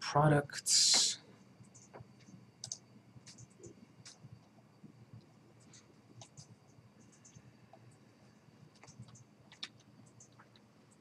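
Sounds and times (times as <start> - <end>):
computer mouse clicks: 0.9 - 4.6, 5.6 - 8.0, 8.7 - 11.0.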